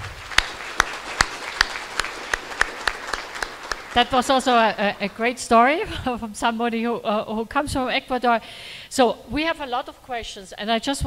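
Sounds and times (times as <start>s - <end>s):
close hand claps: 0.0s - 5.3s
audience applauding: 0.0s - 5.5s.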